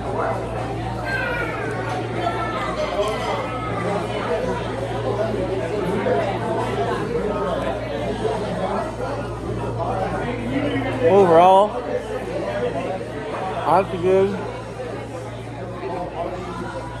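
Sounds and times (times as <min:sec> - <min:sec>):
indistinct diners' conversation: 0:00.0 - 0:17.0.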